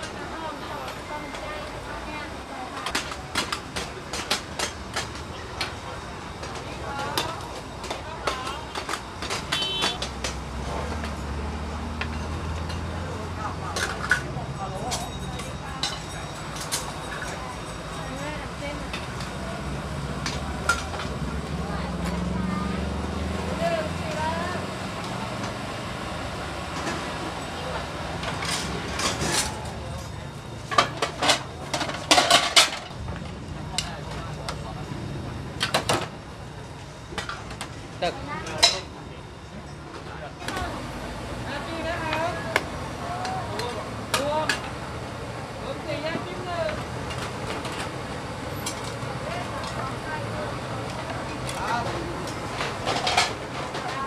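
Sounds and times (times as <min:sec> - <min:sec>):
crowd chatter: 0:00.0 - 0:54.0
metal pots and utensils clinking: 0:13.6 - 0:19.4, 0:28.2 - 0:33.0, 0:51.3 - 0:54.0.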